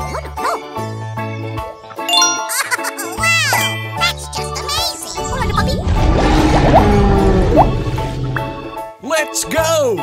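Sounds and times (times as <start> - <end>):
chiming notes: 2.1 - 4.5.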